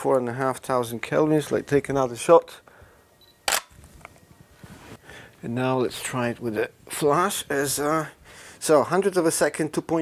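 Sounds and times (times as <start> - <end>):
camera shutter click: 3.4 - 3.7.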